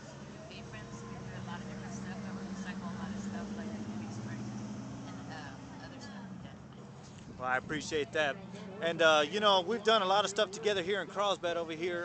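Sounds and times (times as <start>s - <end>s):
chatter of voices: 0.0s - 12.0s
engine humming: 0.0s - 12.0s.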